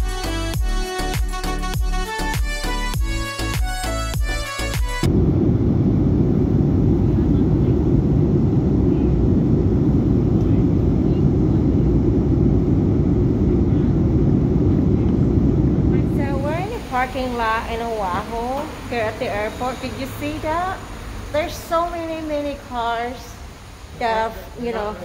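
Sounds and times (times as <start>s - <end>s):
music: 0.0s - 5.1s
jet airliner cabin roar: 4.6s - 22.9s.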